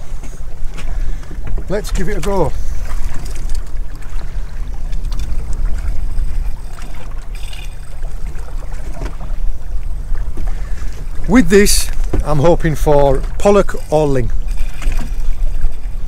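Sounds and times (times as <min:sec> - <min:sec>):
water lapping at hull: 0:00.0 - 0:16.0
wind and sea rumble: 0:00.0 - 0:16.0.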